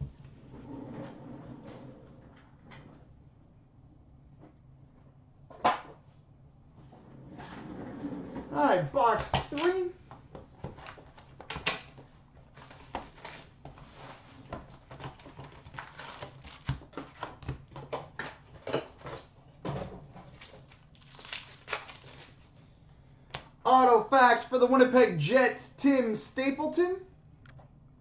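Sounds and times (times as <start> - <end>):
cards clicking and rustling: 14.8 - 19.2, 20.2 - 22.5
wrappers tearing and crinkling: 15.1 - 17.4, 20.2 - 22.6.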